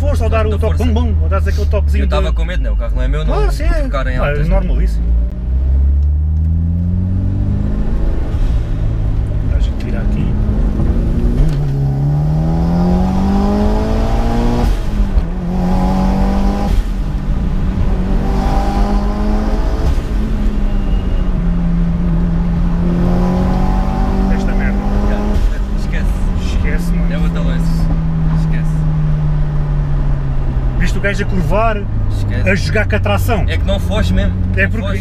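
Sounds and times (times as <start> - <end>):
car engine revving: 0.0 - 35.0.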